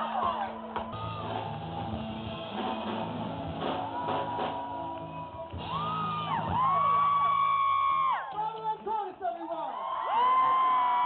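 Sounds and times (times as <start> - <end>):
live rock band: 0.0 - 7.6
audience whooping: 0.0 - 8.4, 9.7 - 11.0.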